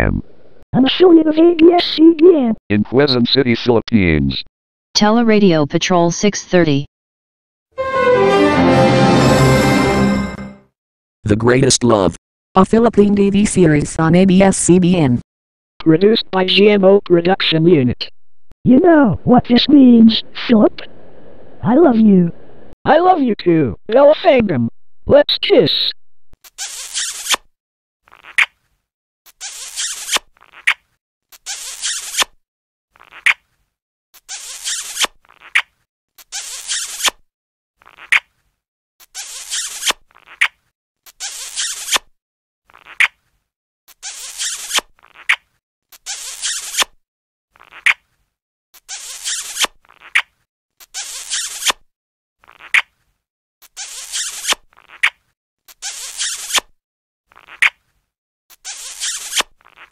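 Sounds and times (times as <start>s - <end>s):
cartoon kissing smacks: 33.0s - 33.4s, 47.6s - 48.0s, 52.4s - 52.9s, 57.3s - 57.8s.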